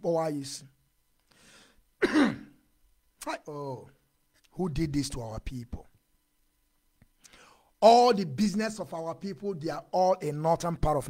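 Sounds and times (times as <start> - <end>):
man clearing his throat: 2.0 - 2.6.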